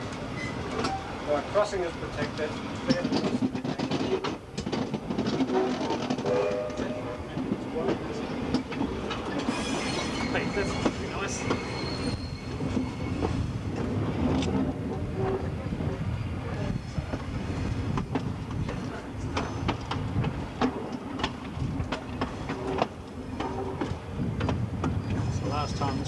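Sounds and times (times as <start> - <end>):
train rumbling on track: 0.0 - 26.0
wheels clicking over rail joints: 0.1 - 15.3, 17.1 - 26.0.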